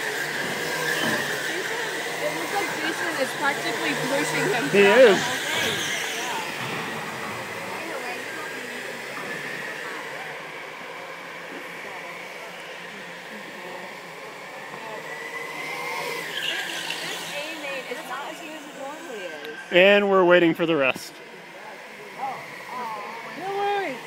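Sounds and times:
kart motors humming: 0.0 - 24.0
thin motor whine: 0.0 - 24.0.

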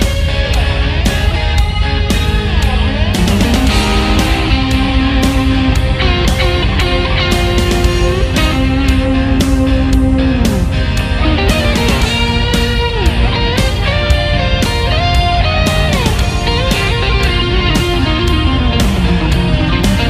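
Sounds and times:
electric guitar sliding melody: 0.0 - 20.0
steady drum beat: 0.0 - 20.0.

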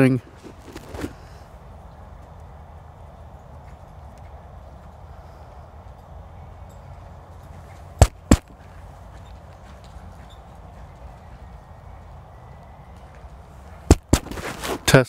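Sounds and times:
steady low hum: 0.0 - 15.0
microphone thumps: 8.0 - 8.5, 13.9 - 14.4.

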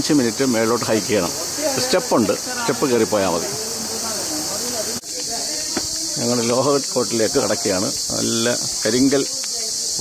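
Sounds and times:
man talking: 0.0 - 5.6, 6.2 - 9.3
insects chirping: 0.0 - 10.0.

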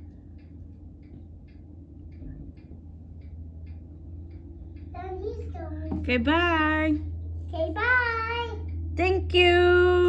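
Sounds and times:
light regular ticking: 0.0 - 10.0
tractor engine humming: 0.0 - 10.0.

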